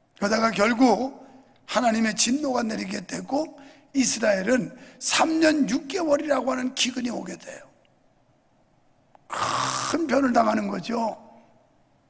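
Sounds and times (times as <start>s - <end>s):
man talking: 0.2s - 7.7s, 9.9s - 11.2s.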